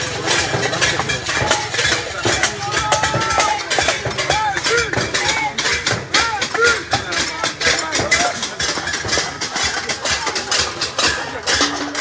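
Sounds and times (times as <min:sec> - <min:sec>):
crowd beating pots and pans: 0:00.0 - 0:12.0.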